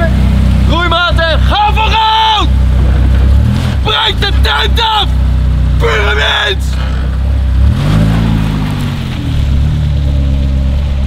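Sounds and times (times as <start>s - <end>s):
car engine pulling away: 2.4s - 11.0s.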